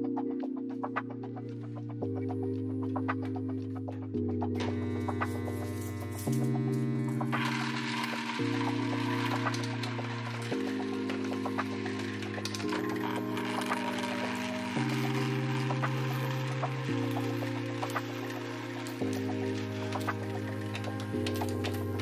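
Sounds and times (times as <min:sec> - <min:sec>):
slow background music: 0:00.0 - 0:22.0
coin sorter rattling: 0:04.6 - 0:22.0
coins clicking into bins: 0:04.6 - 0:22.0.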